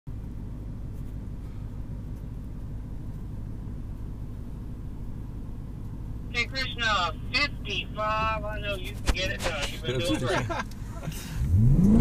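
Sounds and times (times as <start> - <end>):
car engine drone: 0.1 - 12.0
road noise: 0.1 - 12.0.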